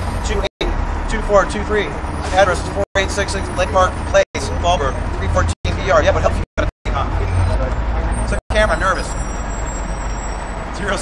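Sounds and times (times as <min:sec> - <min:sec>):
low rumble of traffic: 0:00.0 - 0:11.0
man speaking: 0:00.2 - 0:07.7, 0:08.3 - 0:09.2.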